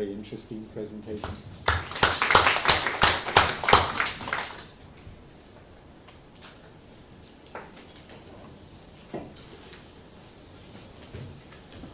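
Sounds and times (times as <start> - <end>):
audience applause: 1.6 - 4.7.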